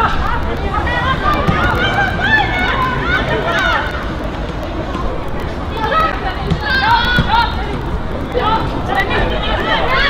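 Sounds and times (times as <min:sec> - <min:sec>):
steady low rumble: 0:00.0 - 0:10.0
women calling and shouting: 0:00.0 - 0:10.0.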